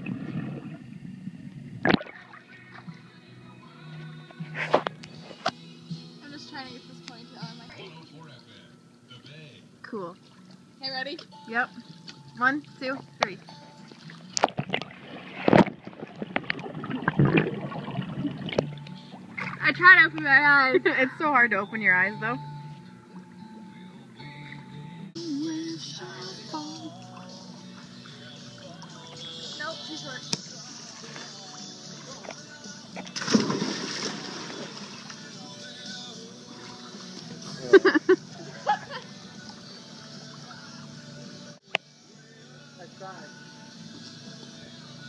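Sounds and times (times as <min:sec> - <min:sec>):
underwater bubbles rushing: 0:00.0 - 0:02.4, 0:14.4 - 0:19.6
water churning: 0:00.0 - 0:03.1, 0:13.8 - 0:19.9, 0:33.0 - 0:35.4
loud splash into pool: 0:33.2 - 0:35.2.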